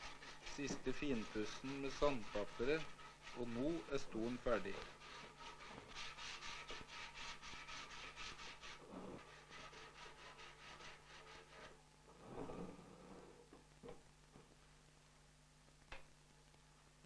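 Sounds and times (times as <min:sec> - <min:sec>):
sandpaper rubbing on wood: 0:00.0 - 0:11.8
low steady hum: 0:00.0 - 0:17.0.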